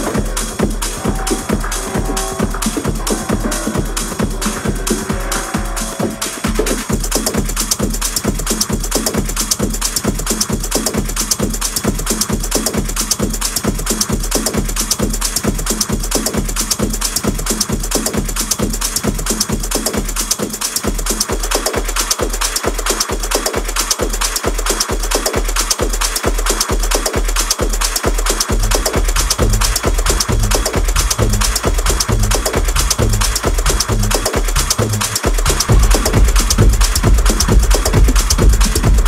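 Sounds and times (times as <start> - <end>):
hi-hats: 0.0 - 39.0
techno kick drum: 0.0 - 39.0
bass line: 28.5 - 39.0.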